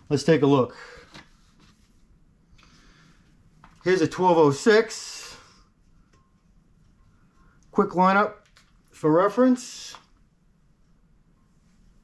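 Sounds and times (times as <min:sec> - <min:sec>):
soft rustling: 0:01.0 - 0:02.4.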